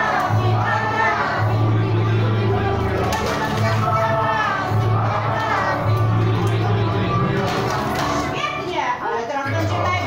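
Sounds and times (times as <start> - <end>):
children's party song: 0.0 - 10.0.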